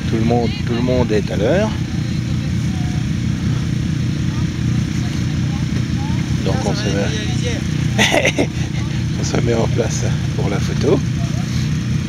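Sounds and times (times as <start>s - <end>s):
faint voices: 0.0s - 12.0s
quad engines idling: 0.0s - 12.0s.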